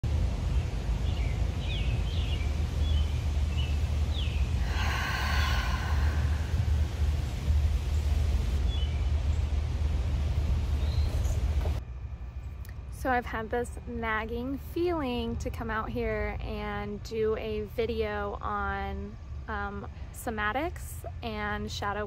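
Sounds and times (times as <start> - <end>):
steady low rumble: 0.0 - 22.0
birds chirping: 0.4 - 10.0, 10.6 - 11.8
person exhaling: 4.6 - 7.2.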